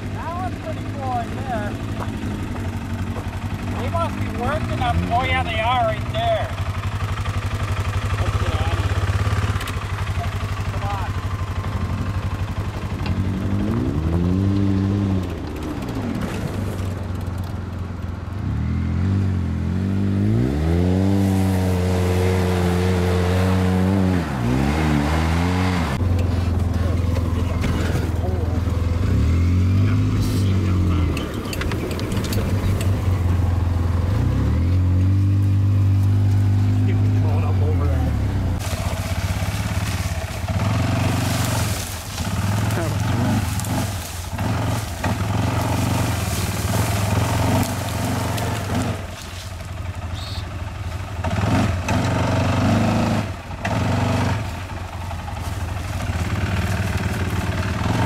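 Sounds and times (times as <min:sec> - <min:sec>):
engine knocks and rattles: 0:00.0 - 0:58.0
off-road vehicle engine revving: 0:00.0 - 0:58.0.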